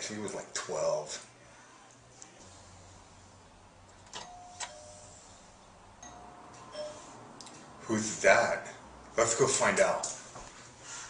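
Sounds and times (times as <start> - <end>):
doorbell button click: 4.1 - 5.0
doorbell ding-dong chime: 4.2 - 5.2, 6.0 - 7.2.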